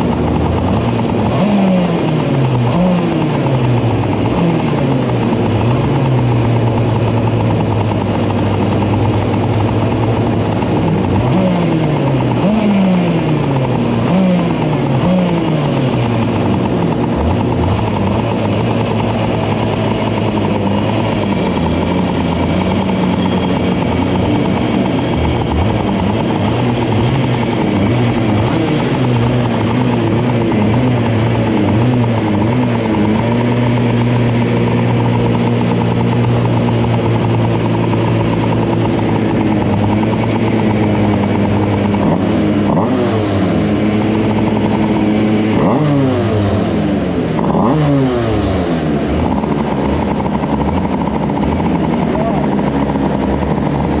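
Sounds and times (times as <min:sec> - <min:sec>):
kart engines idling and revving: 0:00.0 - 0:54.0.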